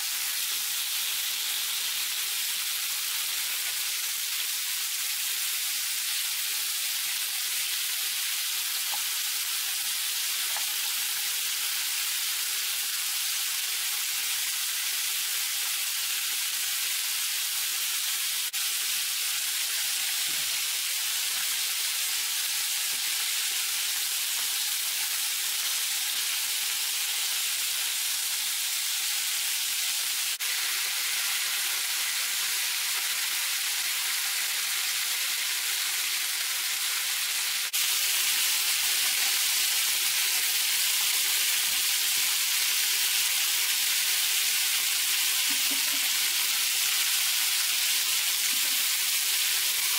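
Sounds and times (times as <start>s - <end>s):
ribs sizzling in oil: 0.0s - 49.9s.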